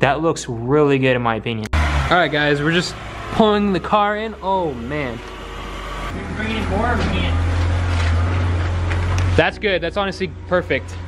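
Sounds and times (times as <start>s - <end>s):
car engine running low speed: 1.7s - 11.0s
rushing noise: 1.8s - 8.9s.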